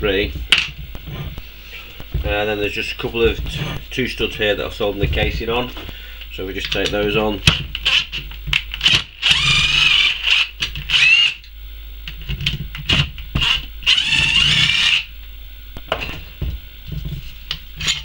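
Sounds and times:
cordless drill running: 8.8s - 11.5s, 13.4s - 15.1s.

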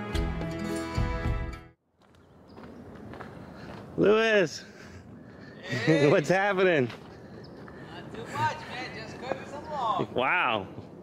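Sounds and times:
outdoor background noise: 1.8s - 11.0s
footsteps on mulch and grass: 1.9s - 4.0s, 6.5s - 8.3s.

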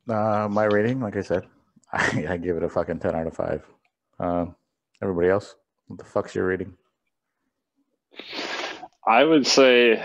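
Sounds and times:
person breath burst: 8.1s - 8.9s.

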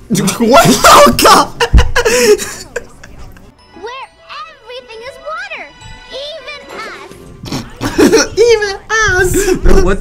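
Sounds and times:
tinkling music: 3.6s - 7.4s.

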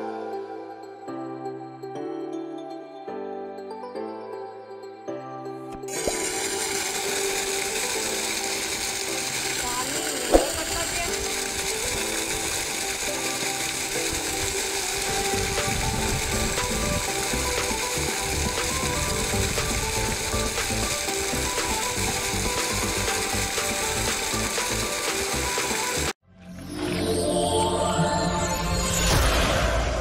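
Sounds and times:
pump motor rattling: 5.7s - 26.2s
water rushing from pipe: 5.8s - 26.2s.

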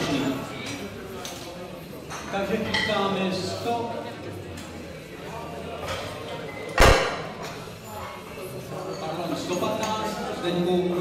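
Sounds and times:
background talk: 0.0s - 11.0s.

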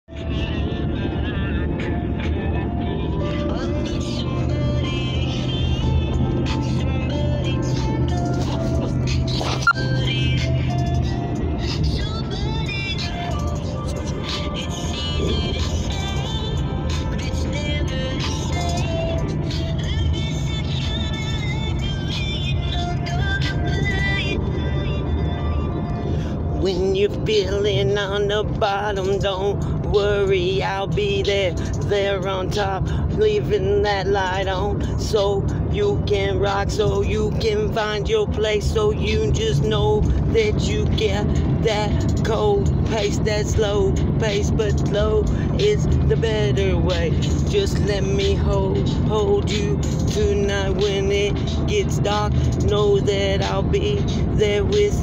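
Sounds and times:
instrumental hip-hop beat: 0.3s - 24.6s, 40.4s - 55.0s.

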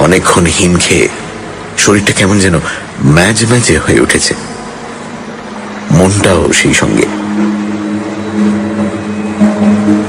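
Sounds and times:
low sustained musical drone: 0.0s - 10.0s.

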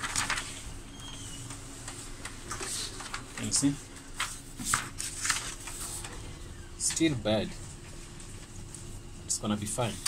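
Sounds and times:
paper rustling: 0.0s - 6.3s.

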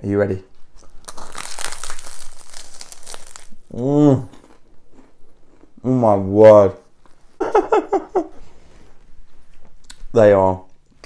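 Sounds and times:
crunching crisp crust: 0.7s - 5.8s.

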